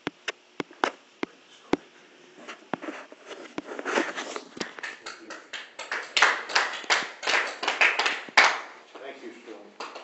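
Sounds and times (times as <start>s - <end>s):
people clapping: 4.6s - 10.0s.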